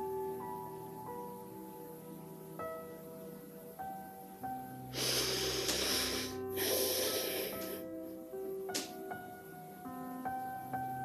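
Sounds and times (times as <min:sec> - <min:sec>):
soft keyboard music: 0:00.0 - 0:11.0
person breathing deeply: 0:04.9 - 0:08.0.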